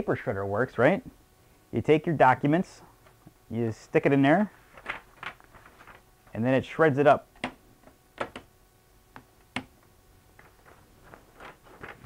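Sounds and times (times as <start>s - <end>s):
paper rustling: 4.5s - 6.0s, 10.4s - 12.0s.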